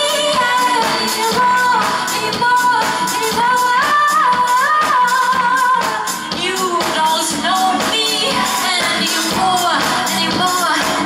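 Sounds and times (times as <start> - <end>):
band playing: 0.0 - 11.0
steady drum beat: 0.0 - 11.0
woman singing: 0.0 - 11.0.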